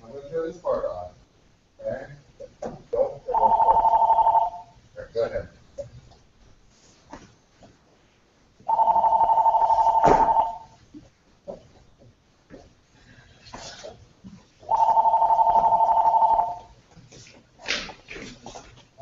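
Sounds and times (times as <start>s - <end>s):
electronic telephone ringer: 3.3s - 4.7s, 8.7s - 10.7s, 14.7s - 16.7s.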